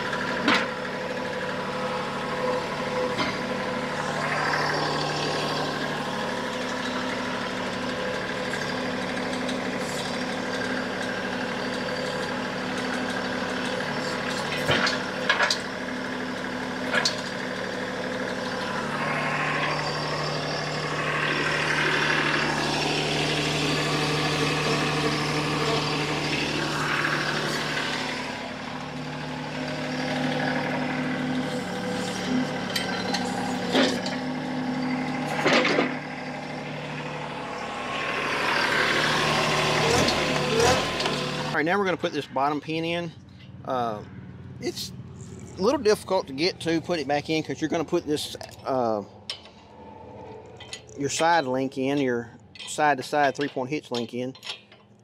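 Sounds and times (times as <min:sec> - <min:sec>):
diesel tractor engine idling: 0:00.0 - 0:55.0
sharp metal clanks: 0:32.0 - 0:36.1.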